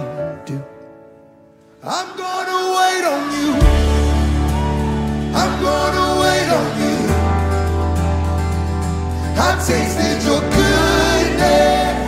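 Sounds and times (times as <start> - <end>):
worship band instrumental music: 0.0 - 12.0.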